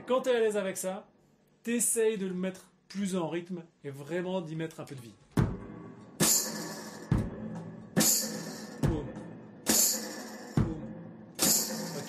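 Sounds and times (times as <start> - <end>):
bass drum kick: 5.4 - 9.9, 10.6 - 12.0
hi-hat with tambourine: 6.2 - 7.3, 8.0 - 9.0, 9.7 - 10.8, 11.4 - 12.0.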